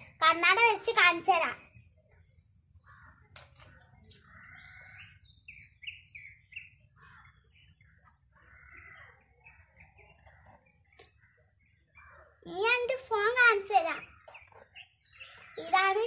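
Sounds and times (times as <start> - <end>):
faint birdsong: 0.0 - 16.0.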